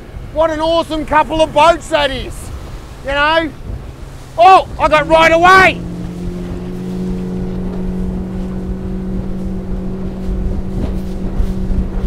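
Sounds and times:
outboard engine drone: 0.0s - 12.0s
wind and water rushing: 0.0s - 12.0s.

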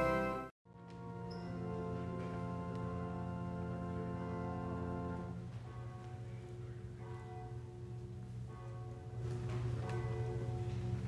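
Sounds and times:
faint church bell tolling: 5.4s - 11.0s.

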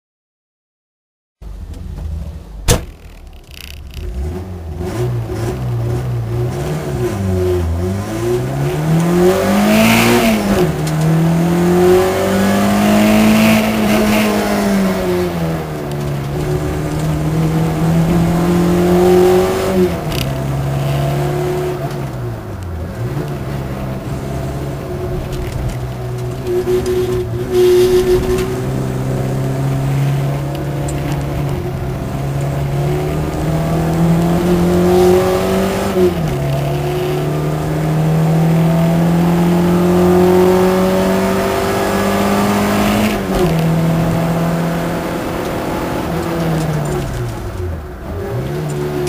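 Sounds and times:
car engine revving: 1.4s - 49.0s
sharp knock: 2.6s - 3.2s.

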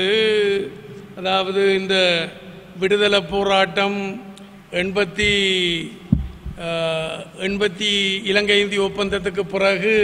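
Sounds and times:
man speaking into a microphone: 0.0s - 10.0s
sharp low thump: 6.1s - 6.6s.

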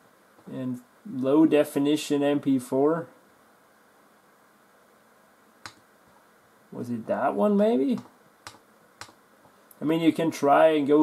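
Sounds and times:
computer mouse click: 5.6s - 5.8s, 8.0s - 9.2s.

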